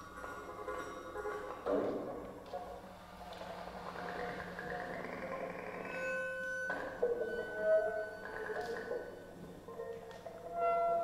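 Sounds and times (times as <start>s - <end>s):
ringing pitched tones: 5.6s - 11.0s.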